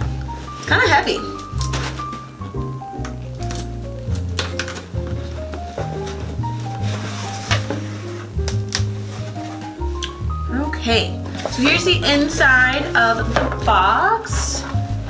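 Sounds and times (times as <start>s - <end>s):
background music melody with bass: 0.0s - 15.0s.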